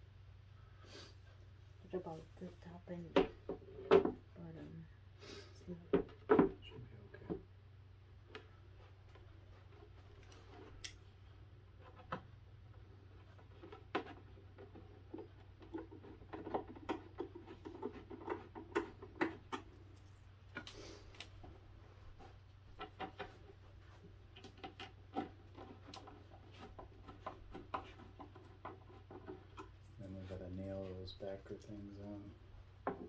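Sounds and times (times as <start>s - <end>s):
person speaking: 29.8s - 32.4s.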